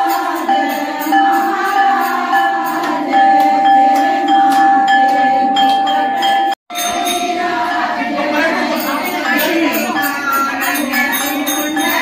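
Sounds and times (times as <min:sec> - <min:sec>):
temple bell ringing: 0:00.0 - 0:12.0.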